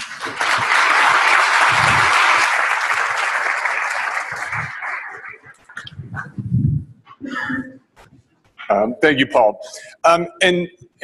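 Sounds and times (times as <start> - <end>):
audience applauding: 0.0 - 5.9.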